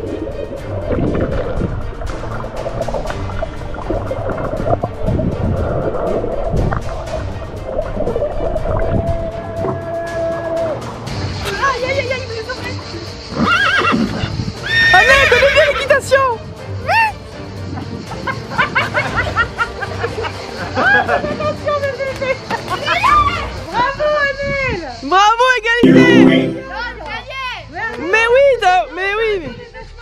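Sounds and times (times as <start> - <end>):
horse whinnying: 13.4 - 15.5
music or sound effect: 25.8 - 27.0.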